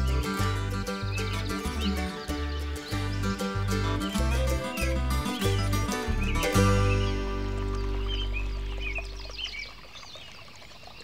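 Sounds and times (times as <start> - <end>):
music: 0.0 - 9.4
birds chirping: 0.0 - 11.0.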